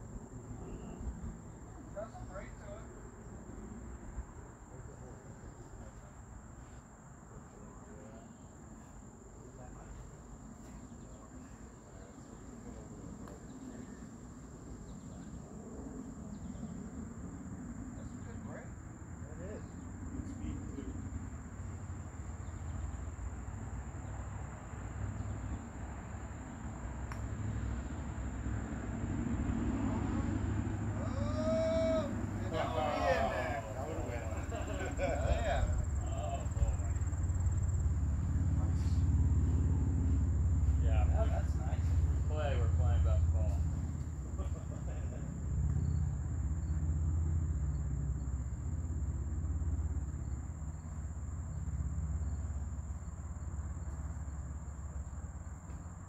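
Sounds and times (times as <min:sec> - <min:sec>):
low outdoor rumble: 0:00.0 - 0:56.0
faint distant voices: 0:00.5 - 0:14.4, 0:30.9 - 0:45.3.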